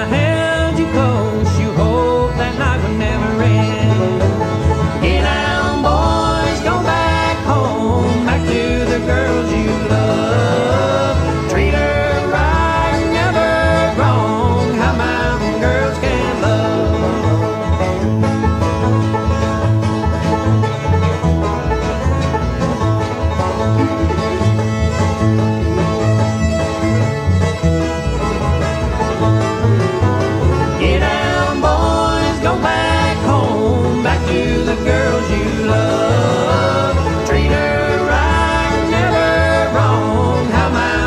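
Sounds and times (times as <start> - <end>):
banjo picking: 0.0 - 41.0
bowed string lead: 0.0 - 41.0
guitar: 0.0 - 41.0
low bass pulse: 0.0 - 41.0.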